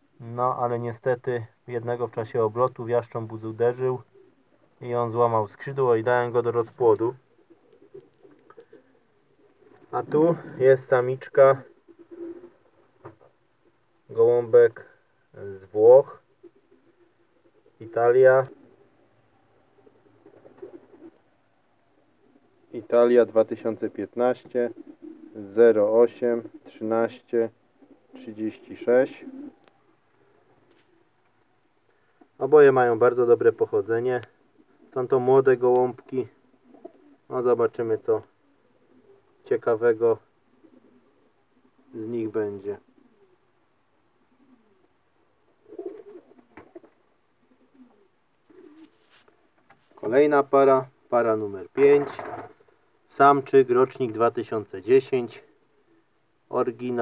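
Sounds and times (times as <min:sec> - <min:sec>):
pigeon cooing: 0:03.2 - 0:56.2.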